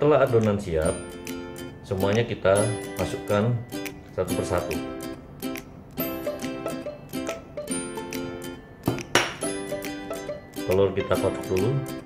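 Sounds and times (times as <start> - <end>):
ukulele music: 0.0 - 12.0
bowl clinking on table: 8.9 - 9.5.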